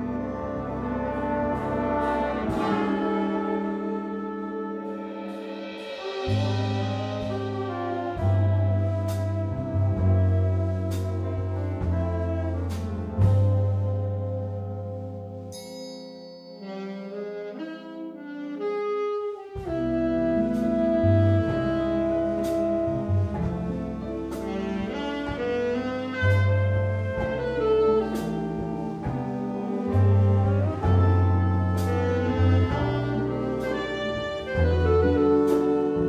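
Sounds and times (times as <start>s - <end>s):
solo saxophone: 0.0s - 15.5s, 16.6s - 36.0s
big band swing jazz: 0.0s - 15.6s, 16.6s - 36.0s
cymbal strokes: 4.8s - 7.7s, 15.5s - 17.0s.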